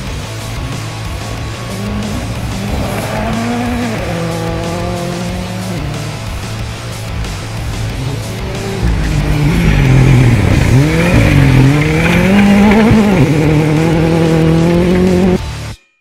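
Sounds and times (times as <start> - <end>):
rally car engine revving: 0.0 - 15.7.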